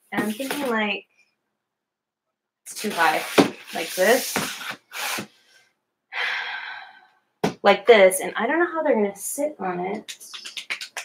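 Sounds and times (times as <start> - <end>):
person exhaling breathily: 6.2 - 7.1.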